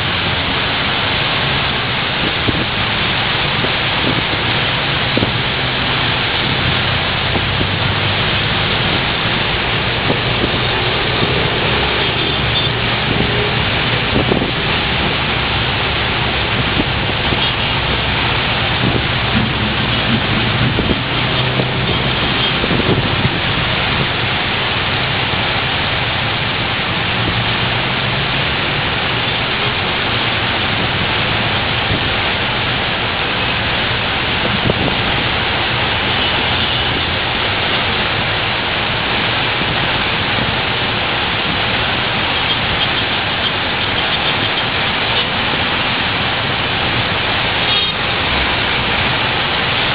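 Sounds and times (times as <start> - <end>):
heavy rain hissing: 0.0 - 49.9
road traffic rumble: 0.0 - 49.9.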